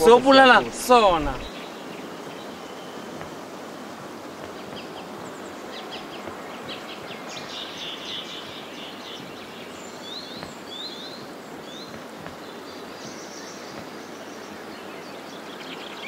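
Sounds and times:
birds chirping: 0.0s - 16.0s
steady outdoor hiss: 0.0s - 16.0s.

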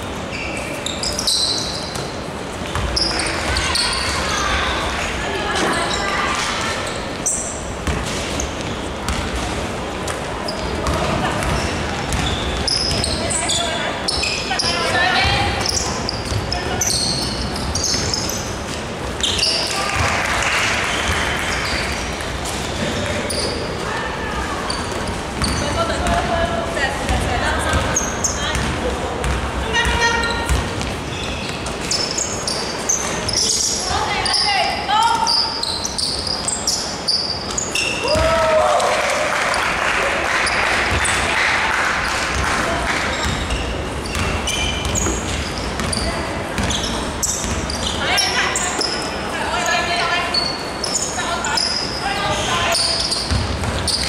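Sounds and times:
sneaker squeaks on floor: 0.0s - 20.1s, 20.9s - 23.8s, 24.6s - 26.3s, 27.1s - 38.3s, 43.0s - 54.0s
basketball bouncing: 2.7s - 3.0s, 7.8s - 13.2s, 15.1s - 16.6s, 24.9s - 26.4s, 27.0s - 31.6s, 42.3s - 47.8s, 53.2s - 54.0s
basketball dribbling on wooden court: 28.5s - 30.9s, 43.2s - 47.6s, 53.2s - 54.0s
players shouting: 38.0s - 41.7s.

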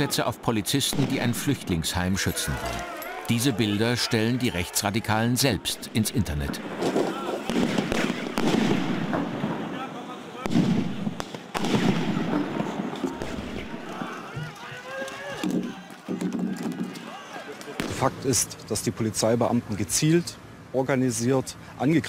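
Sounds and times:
crowd shouting: 0.0s - 0.3s, 1.4s - 6.0s, 6.6s - 8.5s, 11.6s - 17.9s
firecrackers banging: 0.8s - 2.8s, 6.3s - 18.7s.

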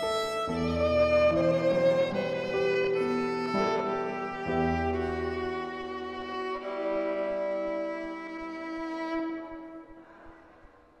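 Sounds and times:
solo violin playing slow notes: 0.0s - 10.5s.

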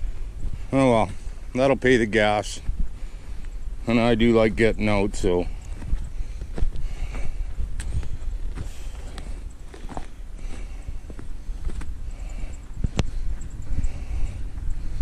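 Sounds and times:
steady low rumble: 0.0s - 15.0s
footsteps in snow: 5.6s - 12.0s.

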